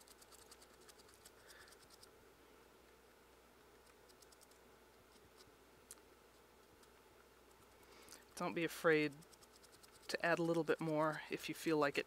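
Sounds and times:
paintbrush scratching: 0.0s - 2.1s, 3.8s - 5.5s, 6.3s - 12.0s.

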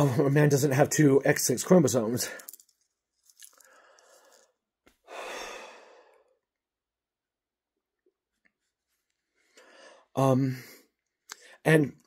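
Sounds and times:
man sighing: 5.1s - 6.2s.

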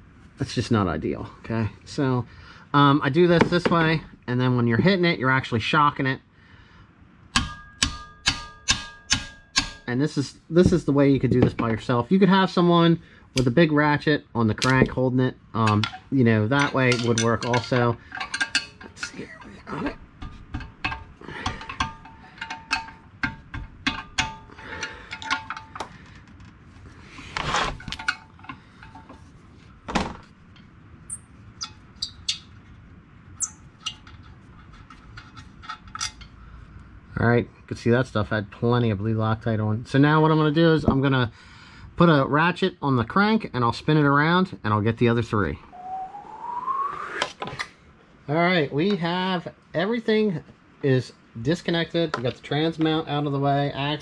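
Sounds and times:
hammer striking metal wrench: 7.3s - 9.9s, 20.2s - 25.8s
sharp metal knock: 7.3s - 9.9s
metal tools clinking on bolt: 15.6s - 25.8s, 27.7s - 29.2s, 33.4s - 36.3s
scraping rustle: 26.6s - 29.8s.

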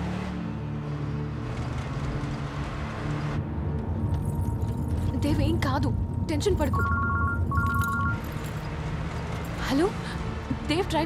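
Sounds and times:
car engine and tyres rumbling: 0.0s - 11.0s
faint background music: 0.0s - 11.0s.

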